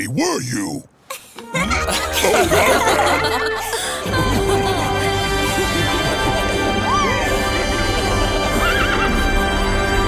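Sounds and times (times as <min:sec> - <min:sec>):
background music: 0:01.5 - 0:10.0.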